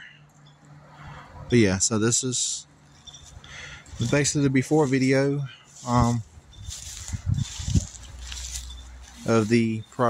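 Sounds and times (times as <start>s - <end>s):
wind rumble on microphone: 5.9s - 8.9s.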